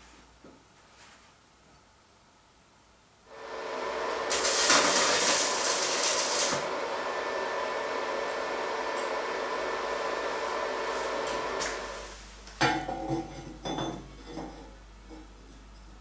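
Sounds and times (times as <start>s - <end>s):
arc welding sizzling and crackling: 3.3s - 12.5s.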